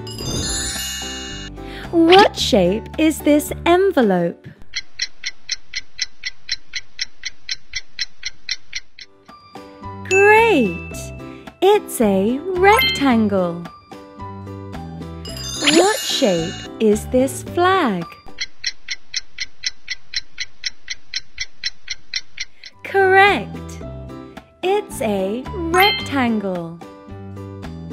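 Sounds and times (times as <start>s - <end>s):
clock ticking: 4.6s - 9.2s, 18.3s - 22.8s.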